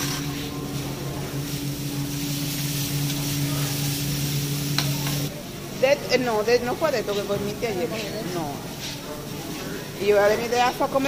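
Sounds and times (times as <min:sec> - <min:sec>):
griddle sizzling: 0:00.0 - 0:11.0
steady low hum: 0:00.0 - 0:11.0.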